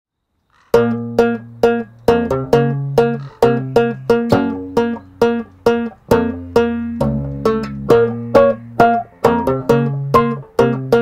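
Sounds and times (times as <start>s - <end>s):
banjo guitar chords: 0.7s - 11.0s
low bass note: 2.1s - 10.5s.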